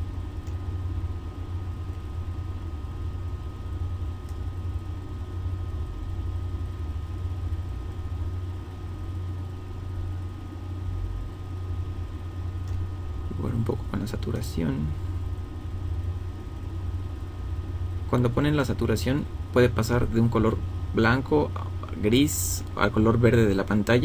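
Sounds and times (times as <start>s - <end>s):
low-pitched hum: 0.0s - 24.0s
faint clicks: 12.6s - 12.8s.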